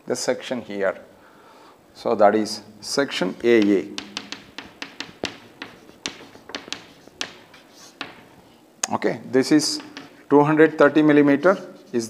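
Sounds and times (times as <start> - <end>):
chalk tapping on a chalkboard: 3.0 - 8.5, 9.6 - 10.3.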